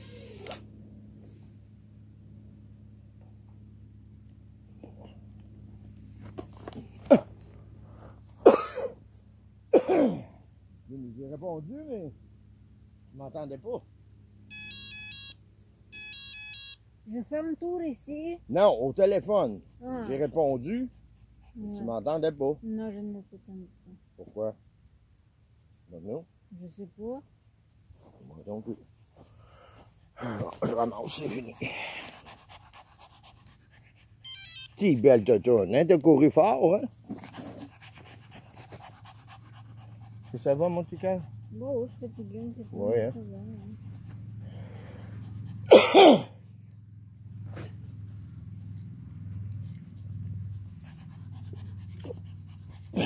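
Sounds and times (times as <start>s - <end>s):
mobile phone ringtone: 14.5s - 16.8s, 34.2s - 34.8s
dog panting rapidly: 20.2s - 22.0s, 30.4s - 35.6s, 36.9s - 44.4s, 45.1s - 45.7s, 48.7s - 53.0s.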